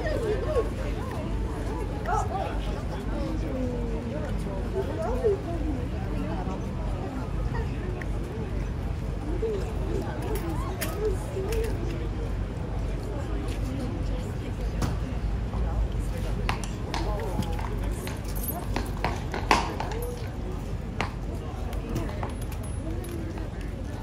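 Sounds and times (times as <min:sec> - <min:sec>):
people talking: 0:00.0 - 0:24.0.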